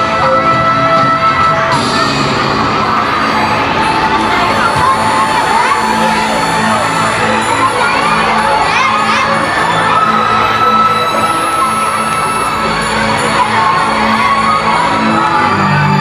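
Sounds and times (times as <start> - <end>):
children shouting and cheering: 0.0 - 16.0
dance music: 0.0 - 16.0.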